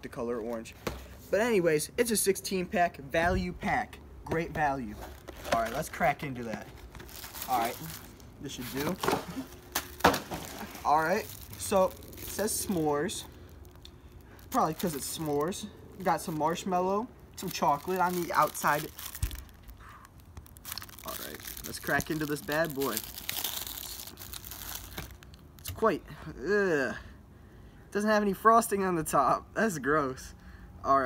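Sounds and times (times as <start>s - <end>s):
foil wrapper crinkling: 4.8s - 25.7s
packaging being torn open: 6.8s - 16.7s, 17.4s - 25.7s.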